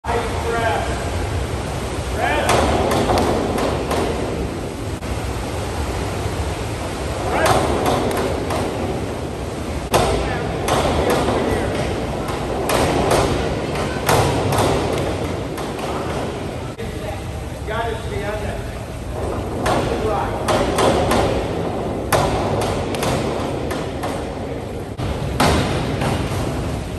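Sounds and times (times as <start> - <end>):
diving springboard knocking: 0.0 - 26.9.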